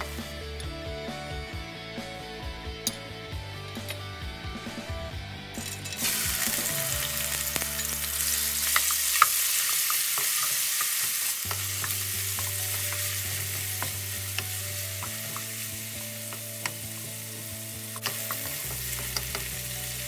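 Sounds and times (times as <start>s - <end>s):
chicken sizzling in hot oil: 6.0s - 20.0s.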